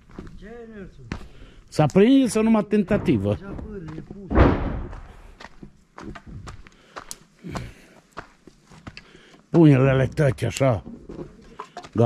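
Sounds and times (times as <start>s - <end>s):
heavy thump: 2.8s - 5.4s.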